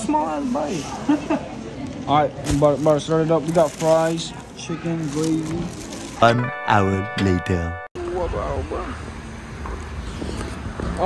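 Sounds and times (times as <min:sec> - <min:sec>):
person speaking: 0:06.2 - 0:07.9
traffic rumble: 0:08.0 - 0:11.0.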